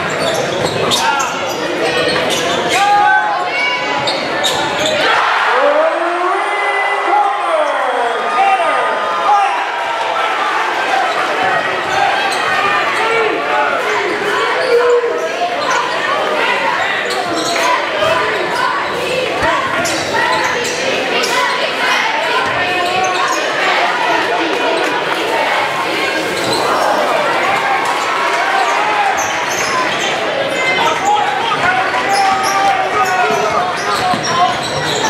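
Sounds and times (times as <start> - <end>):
crowd voices echoing: 0.0 - 35.0.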